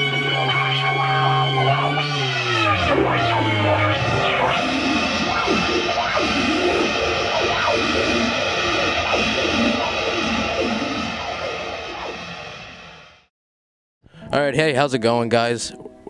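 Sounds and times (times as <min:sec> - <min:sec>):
harsh noise music with squeals: 0:00.0 - 0:13.3.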